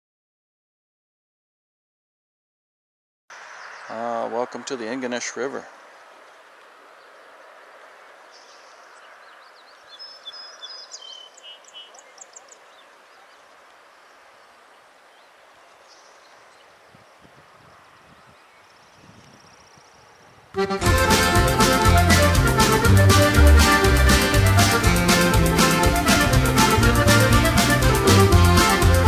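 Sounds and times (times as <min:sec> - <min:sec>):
songbird high chirps: 0:03.3 - 0:20.5
faint outdoor hiss: 0:03.3 - 0:29.0.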